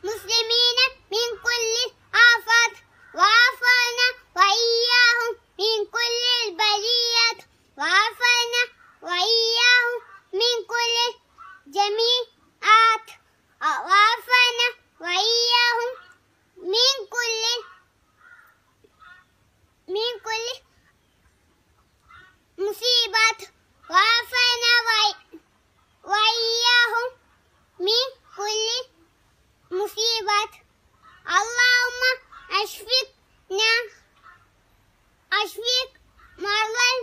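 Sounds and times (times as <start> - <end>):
boy chanting melodically: 0.0 - 21.1, 21.9 - 29.0, 29.6 - 34.6, 35.3 - 37.0.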